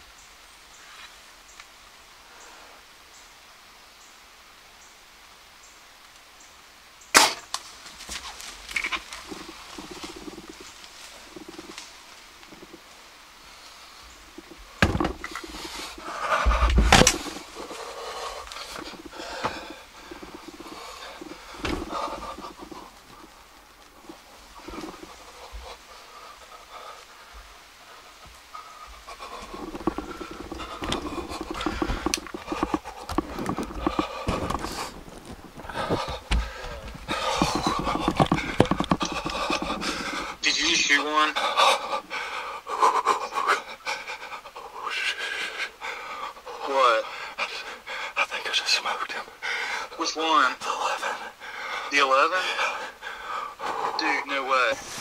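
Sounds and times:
man panting: 0:14.8 - 0:23.3, 0:24.6 - 0:35.0, 0:35.6 - 0:40.7, 0:41.3 - 0:48.2, 0:50.6 - 0:54.1
person whispering: 0:38.9 - 0:41.5, 0:48.2 - 0:49.3, 0:53.9 - 0:54.9.

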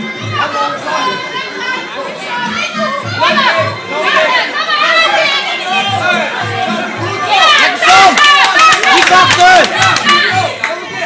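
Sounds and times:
spectators shouting and cheering: 0:00.0 - 0:11.0
sharp claps: 0:08.0 - 0:10.8.

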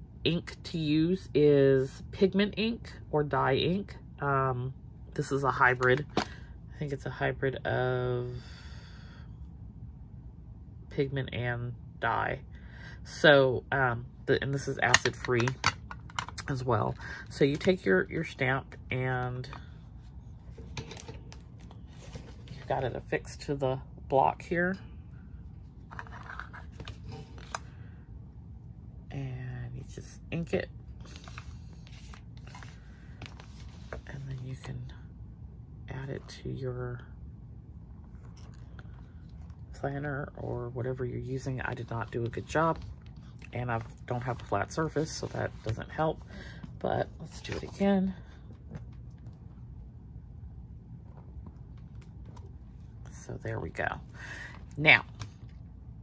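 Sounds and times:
steady low rumble: 0:00.0 - 0:56.0.

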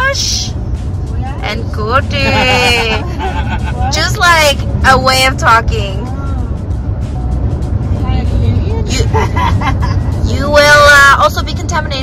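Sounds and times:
car road and engine rumble: 0:00.0 - 0:12.0
quiet music playing: 0:00.0 - 0:12.0.

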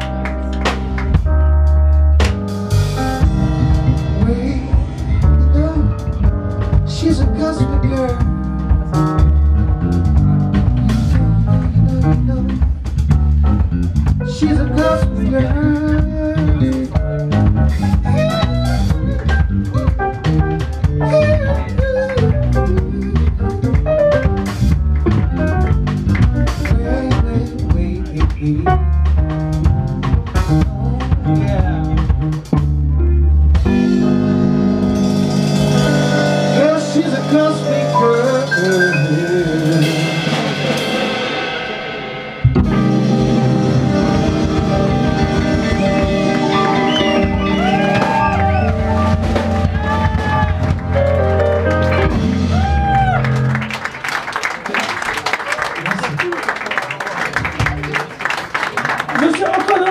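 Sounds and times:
bass guitar: 0:00.0 - 0:56.3
drum kit: 0:00.0 - 0:56.3
electric guitar: 0:10.5 - 0:27.7, 0:29.6 - 0:54.0.

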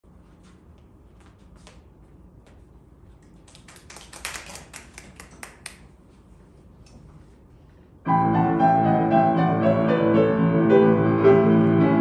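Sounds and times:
audience clapping: 0:03.4 - 0:06.0.

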